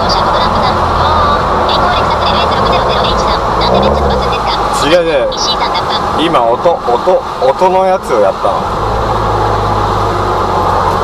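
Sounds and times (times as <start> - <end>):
car engine and road noise: 0.0 - 11.0.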